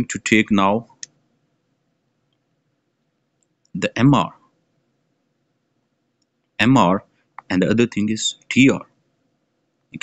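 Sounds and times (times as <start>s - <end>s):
man speaking: 0.0s - 1.1s, 3.8s - 4.4s, 6.6s - 8.9s.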